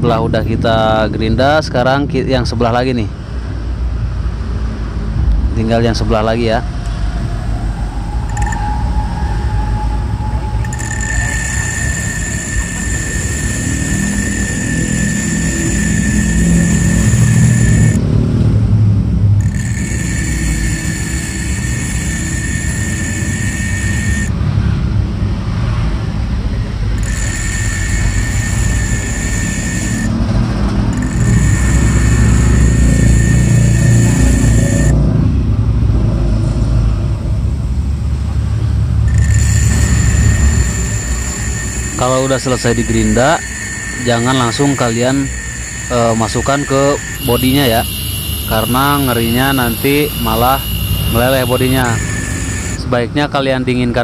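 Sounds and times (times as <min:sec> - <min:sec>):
grinder disc grinding metal: 0:10.5 - 0:18.0, 0:19.4 - 0:24.3, 0:27.0 - 0:35.0, 0:39.0 - 0:52.8
bench grinder motor rumble: 0:10.6 - 0:18.1, 0:19.4 - 0:24.3, 0:27.0 - 0:35.0, 0:39.0 - 0:52.8.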